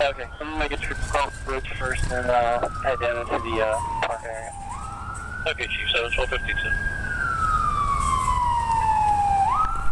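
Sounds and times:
emergency vehicle siren wailing: 0.0s - 9.9s
low rumble of passing vehicles: 0.0s - 9.9s.

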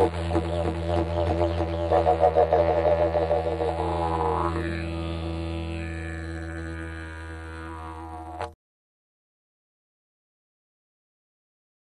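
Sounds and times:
didgeridoo drone: 0.0s - 8.6s.

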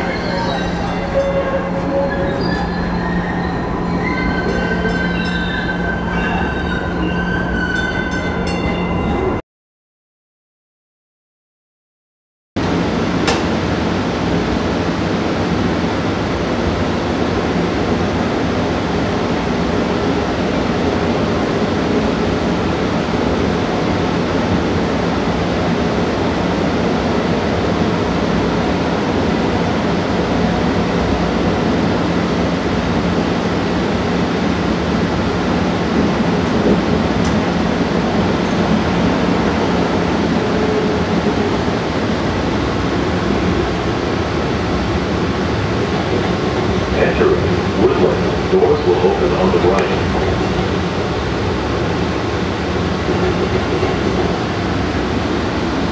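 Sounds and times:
train wheels rumbling on rail: 0.0s - 9.4s, 12.6s - 55.9s.

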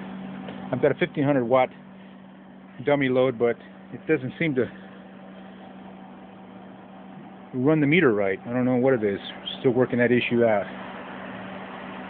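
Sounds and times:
cooling fans whirring: 0.0s - 12.0s
low steady hum: 0.0s - 12.0s.

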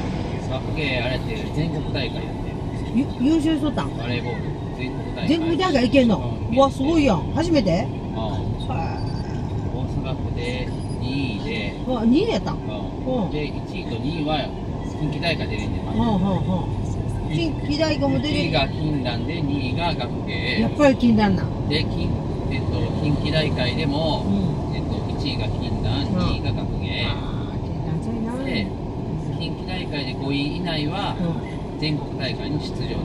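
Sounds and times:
road and tyre noise: 0.0s - 33.0s
people talking: 0.3s - 33.0s.

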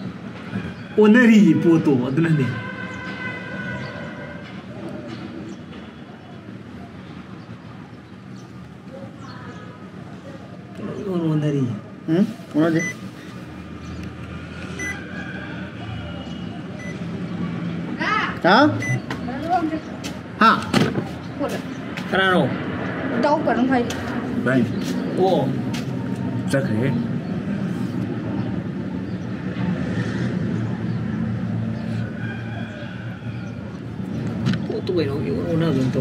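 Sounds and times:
high electronic beep: 14.8s - 15.0s, 16.8s - 17.0s, 18.8s - 19.1s.

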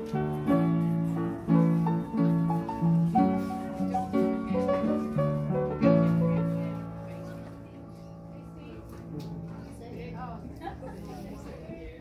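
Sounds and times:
player piano playing: 0.0s - 10.4s.

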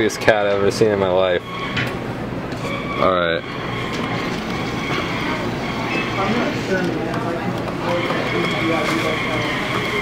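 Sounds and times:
arcade background din: 0.0s - 10.0s.

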